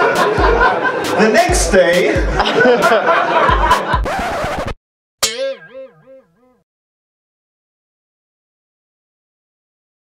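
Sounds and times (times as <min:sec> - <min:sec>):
cartoon boing: 0:05.2 - 0:06.6.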